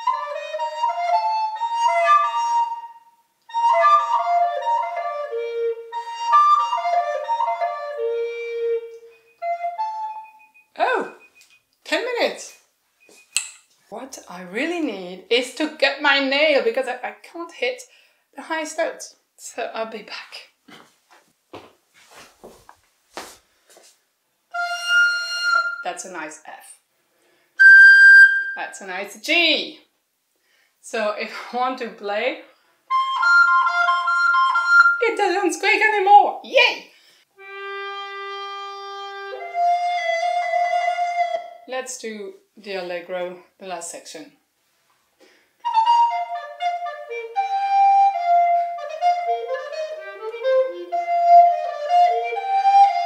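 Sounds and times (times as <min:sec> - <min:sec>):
recorder playing held notes: 0:00.0 - 0:11.4, 0:24.5 - 0:26.0, 0:27.6 - 0:28.7, 0:32.9 - 0:35.2, 0:37.4 - 0:41.6, 0:45.6 - 0:53.0
woman vocalizing: 0:10.8 - 0:11.2.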